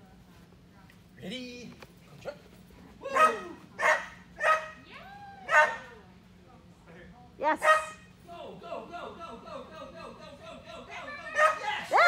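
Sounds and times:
small dog barking: 3.1 - 4.8, 5.5 - 5.9, 7.6 - 8.0, 11.3 - 12.0.

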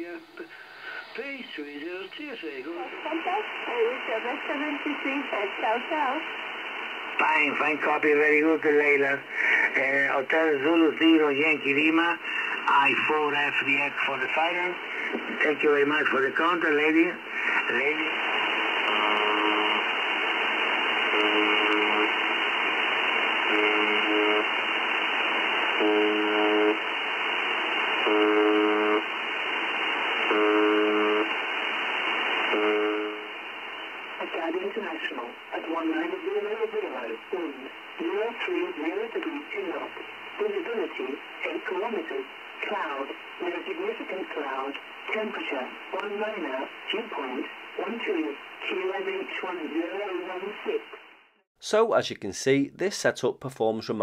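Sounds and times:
voice reading weather reports: 0.0 - 6.3, 7.2 - 18.3, 34.2 - 50.8, 51.6 - 54.0
radio static: 0.0 - 51.2
harsh buzz tone: 18.8 - 33.4.

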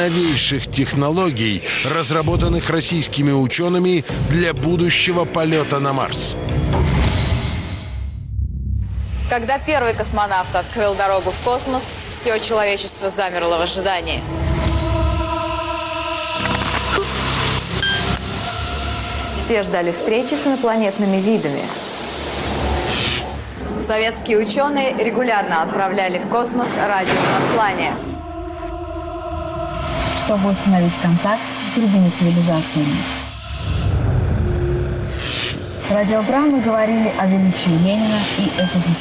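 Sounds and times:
loud deep rumbling: 27.0 - 37.2.

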